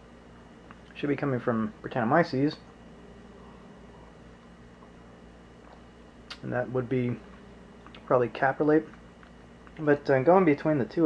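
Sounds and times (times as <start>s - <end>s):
low hum and hiss: 0.0s - 11.0s.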